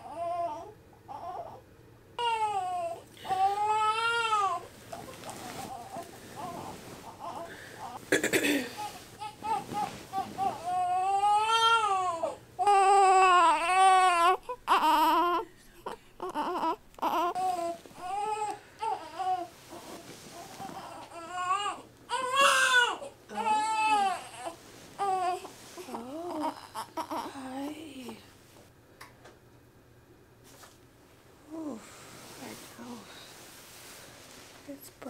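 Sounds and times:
baby crying: 2.2s - 4.7s, 8.7s - 19.5s, 20.4s - 27.4s.

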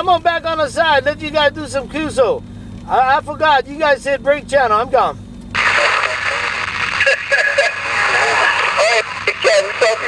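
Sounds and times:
garbled radio voice: 5.6s - 10.0s
radio static: 5.6s - 10.0s.

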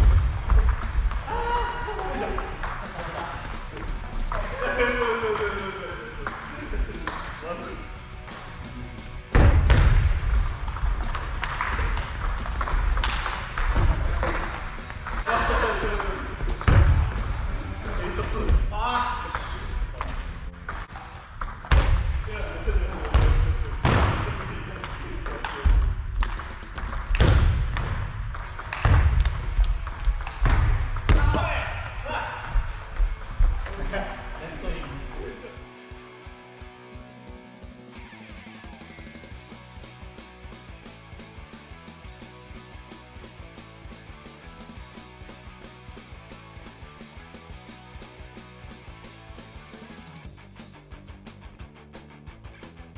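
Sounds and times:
background music: 0.0s - 52.9s
players' voices: 0.8s - 9.3s, 10.4s - 21.2s, 22.1s - 26.0s, 31.1s - 36.2s.

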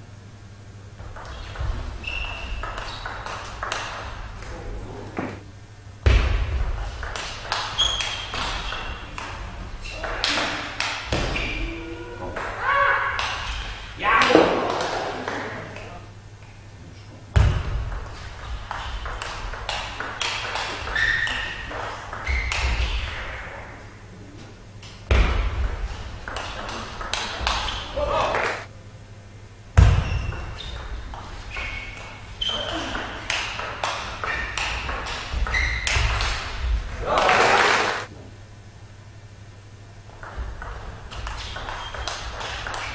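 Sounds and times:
ping pong ball clicking: 2.6s - 4.0s, 26.3s - 27.6s
short shouts and voices: 11.6s - 13.4s, 14.0s - 14.9s.

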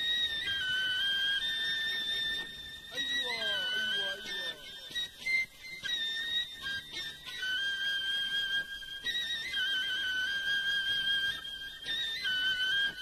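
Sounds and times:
flute-like lead instrument melody: 0.0s - 13.0s.

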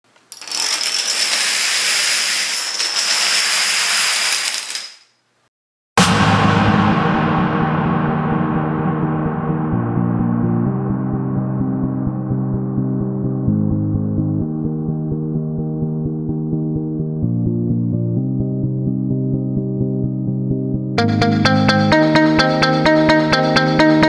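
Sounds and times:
plastic dominoes toppling: 0.2s - 5.2s
ambient music with low tones: 6.0s - 24.0s.

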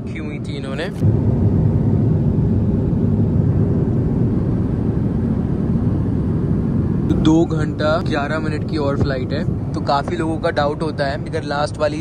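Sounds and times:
jet engine low rumble: 0.0s - 12.0s.

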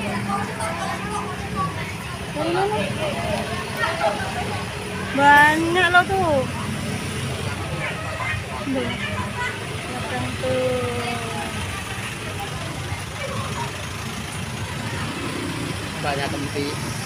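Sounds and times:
people and children talking: 0.0s - 17.0s
trucks and motorbikes passing: 0.0s - 17.0s.

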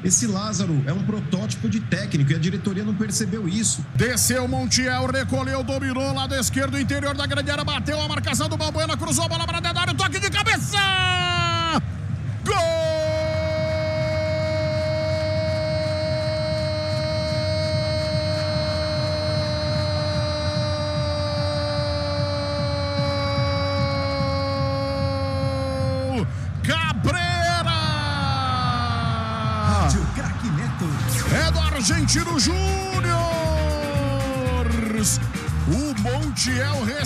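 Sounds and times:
excited play-by-play commentary: 0.0s - 11.8s, 12.4s - 37.0s
commentator's long goal shout: 10.0s - 11.8s, 12.4s - 30.2s, 31.1s - 37.0s.

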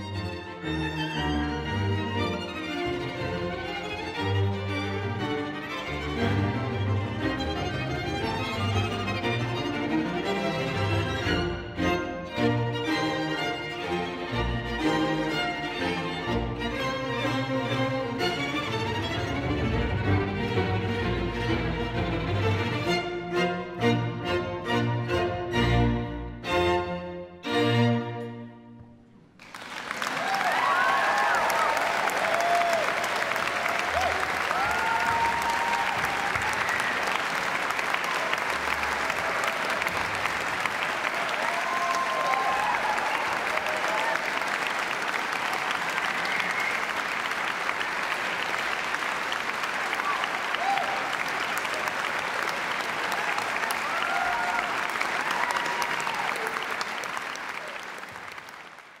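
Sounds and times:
audience applauding: 29.4s - 59.0s
shouts and cheers: 30.1s - 37.2s, 41.0s - 44.6s, 49.9s - 51.2s, 53.0s - 56.9s.

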